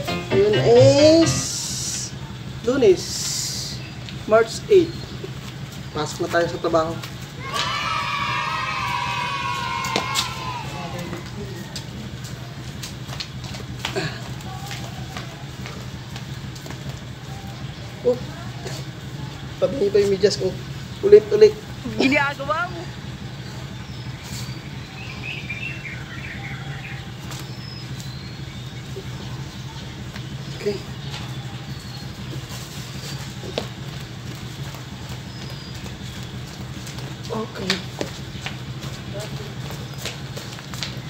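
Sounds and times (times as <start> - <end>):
long held call: 0.0 - 2.2
birds chirping: 0.0 - 12.7, 14.0 - 41.0.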